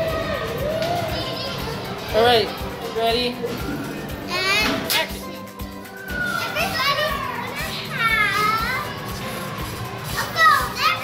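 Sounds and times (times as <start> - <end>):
faint background music: 0.0 - 11.0
children calling out: 5.8 - 9.1.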